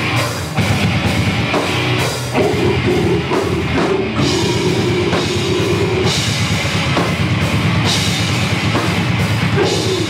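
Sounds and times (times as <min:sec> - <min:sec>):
loud metal band playing: 0:00.0 - 0:10.0.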